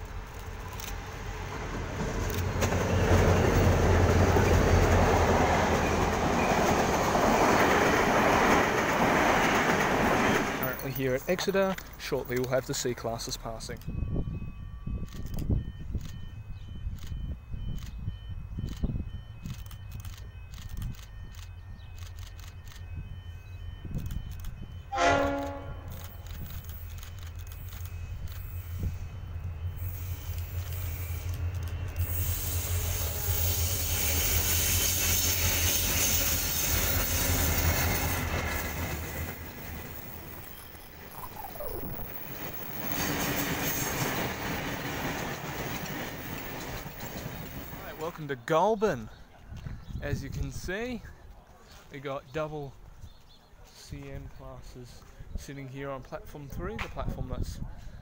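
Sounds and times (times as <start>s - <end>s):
train carriages rolling past: 0.0s - 52.0s
locomotive horn blast: 24.9s - 26.0s.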